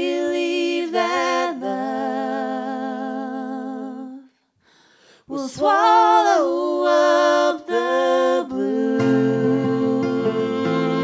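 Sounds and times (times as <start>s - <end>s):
voices singing unaccompanied: 0.0s - 4.3s, 5.3s - 11.0s.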